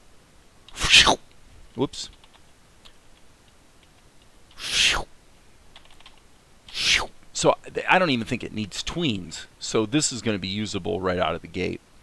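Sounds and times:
faint clicks: 0:00.6 - 0:04.6, 0:05.7 - 0:06.3.

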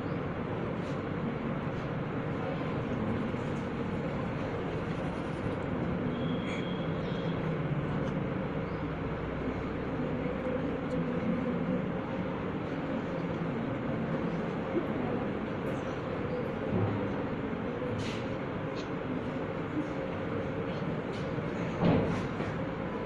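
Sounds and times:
constant hum: 0:00.0 - 0:23.0
low murmur of voices: 0:00.0 - 0:23.0.

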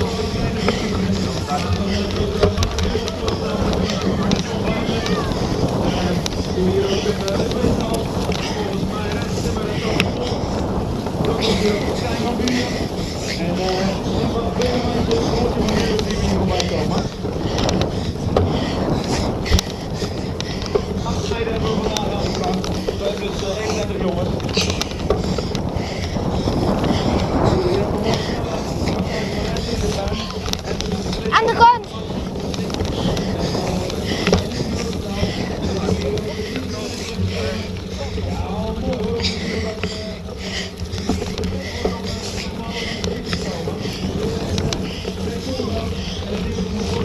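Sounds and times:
bike clicks and rattles: 0:00.0 - 0:47.0
bike tyres rumbling: 0:00.0 - 0:47.0
wind on microphone: 0:00.0 - 0:47.0
distant announcer voice: 0:31.1 - 0:32.1.

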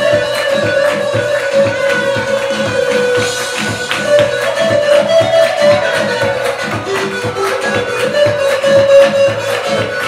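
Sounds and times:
loud dance music: 0:00.0 - 0:10.0.

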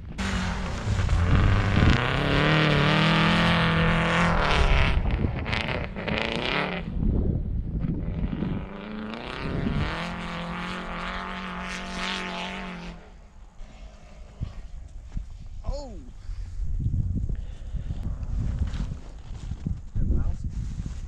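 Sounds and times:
rally car engine at high revs: 0:00.0 - 0:06.9, 0:07.8 - 0:14.7.

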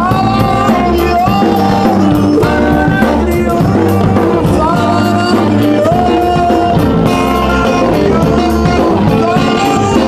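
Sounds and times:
drums: 0:00.0 - 0:10.0
electric bass: 0:00.0 - 0:10.0
guitar: 0:00.0 - 0:10.0.

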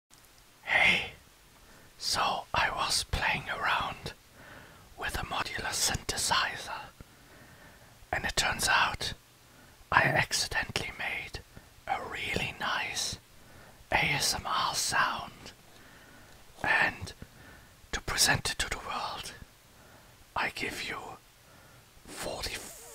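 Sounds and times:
whispered speech: 0:00.7 - 0:01.2, 0:02.0 - 0:04.2, 0:05.0 - 0:06.9, 0:08.2 - 0:09.2, 0:09.9 - 0:13.2, 0:13.9 - 0:15.5, 0:16.6 - 0:17.2, 0:17.9 - 0:19.4, 0:20.4 - 0:21.2, 0:22.1 - 0:22.9.

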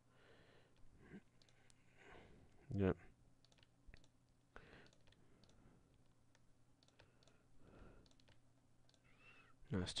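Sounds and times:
faint low hum: 0:00.0 - 0:10.0
computer mouse clicks: 0:01.3 - 0:01.8, 0:03.4 - 0:04.2, 0:04.8 - 0:07.4, 0:08.0 - 0:09.3.

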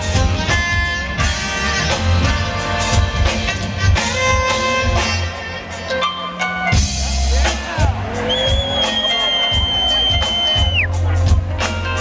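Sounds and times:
sliding lead melody: 0:00.0 - 0:12.0
smooth jazz band playing: 0:00.0 - 0:12.0.

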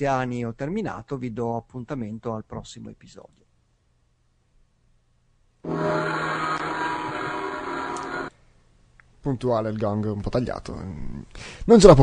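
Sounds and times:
gong ringing: 0:05.6 - 0:08.3.

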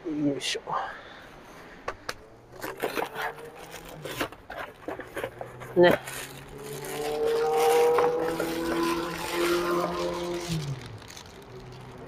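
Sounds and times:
vehicle engine driving past: 0:05.3 - 0:12.0.

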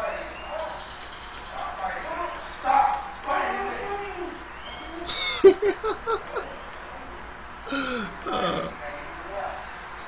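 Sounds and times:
man crying out in strain: 0:07.7 - 0:08.8.

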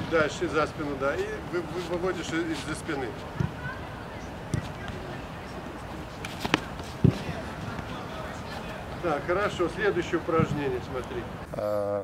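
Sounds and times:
foot kicking football: 0:01.1 - 0:03.8, 0:04.4 - 0:05.3, 0:06.0 - 0:09.0.

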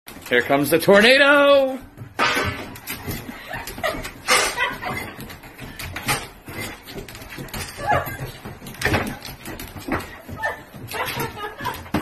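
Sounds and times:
knocks and scuffs on tiled floor: 0:01.8 - 0:12.0.

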